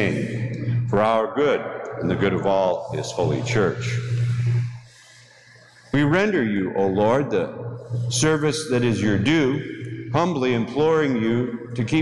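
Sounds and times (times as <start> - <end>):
man speaking: 0.0 - 0.3, 0.9 - 4.2, 6.0 - 7.5, 8.1 - 12.0
steady low hum: 0.0 - 12.0.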